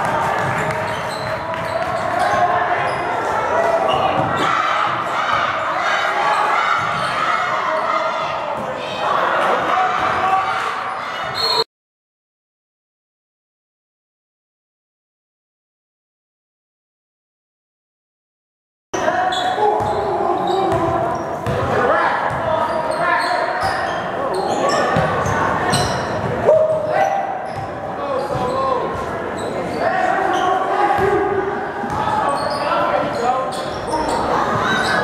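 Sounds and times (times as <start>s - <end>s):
crowd voices and shouts: 0.0s - 11.7s, 19.0s - 35.0s.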